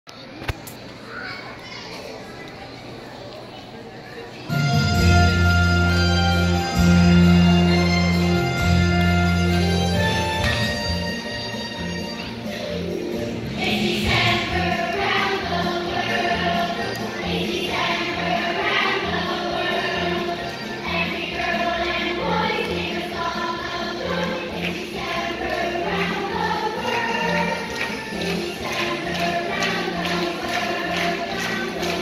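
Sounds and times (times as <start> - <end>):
children chattering: 0.1 - 5.4, 11.2 - 32.0
choir singing: 13.4 - 32.0.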